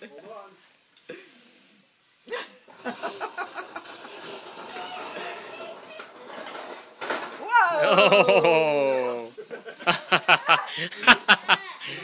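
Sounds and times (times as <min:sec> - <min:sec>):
people laughing: 0:02.3 - 0:04.3, 0:07.8 - 0:12.0
family talking and calling out: 0:04.2 - 0:09.4, 0:10.1 - 0:12.0.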